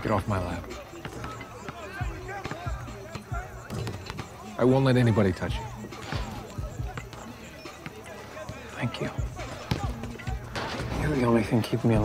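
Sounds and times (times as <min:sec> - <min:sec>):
distant voices: 0:00.0 - 0:12.0
music: 0:00.0 - 0:12.0.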